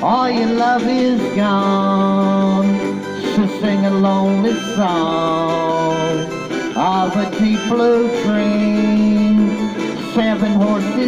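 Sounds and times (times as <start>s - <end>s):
guitar music: 0.0s - 11.0s
man singing into microphone: 0.0s - 11.0s.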